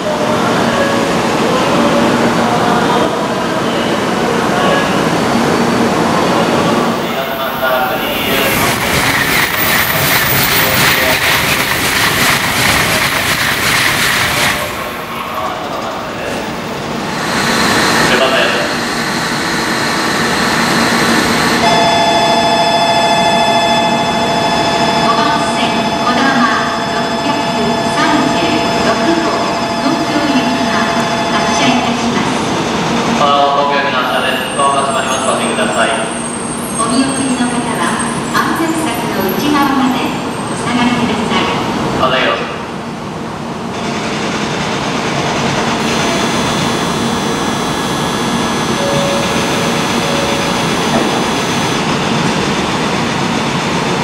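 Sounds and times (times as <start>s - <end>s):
train rushing past: 0.0s - 22.6s
train pulling in: 0.0s - 54.0s
voices or announcements: 6.1s - 11.3s, 45.8s - 51.9s
two-pitch electronic tone: 45.8s - 51.8s.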